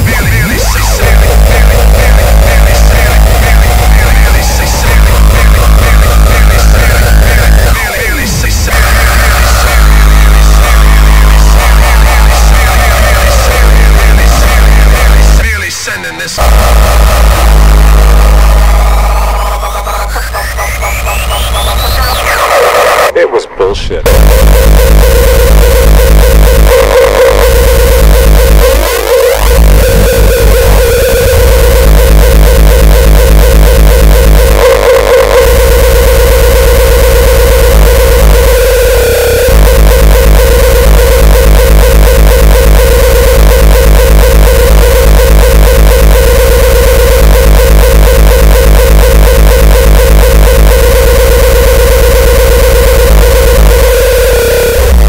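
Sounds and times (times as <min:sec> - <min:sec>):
fast distorted kick drum: 0:00.0 - 0:15.5, 0:16.4 - 0:23.1, 0:24.1 - 0:55.0
held distorted synth note: 0:00.0 - 0:23.2, 0:24.0 - 0:55.0.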